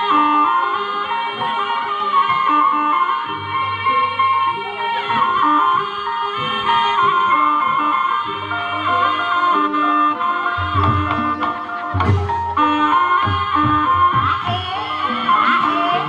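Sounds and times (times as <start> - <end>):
pitch-bending wind instrument melody: 0.0 - 16.0
low drum beats: 10.6 - 14.9.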